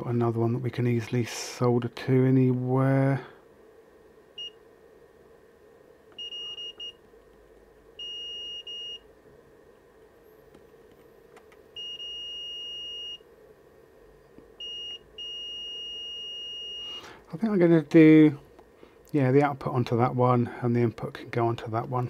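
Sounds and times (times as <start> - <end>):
continuity tester beeping: 4.4 - 4.6, 6.1 - 7.0, 8.0 - 9.1, 11.7 - 13.3, 14.6 - 17.0.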